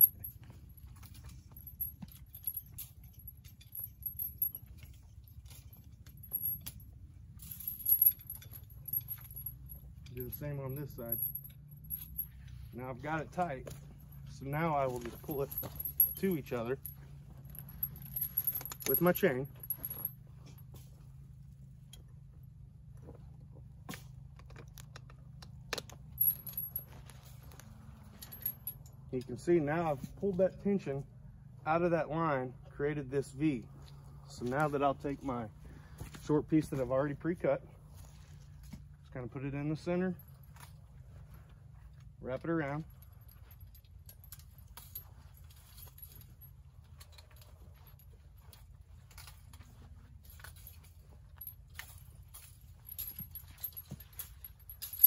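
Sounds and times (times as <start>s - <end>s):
steel chain clinking and rattling: 0.0s - 55.0s.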